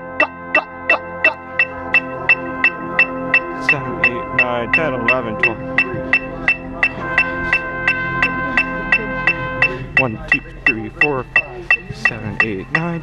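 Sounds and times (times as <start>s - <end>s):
held drone tone: 0.0s - 13.0s
higher tone: 0.0s - 13.0s
electronic metronome clicking: 0.2s - 13.0s.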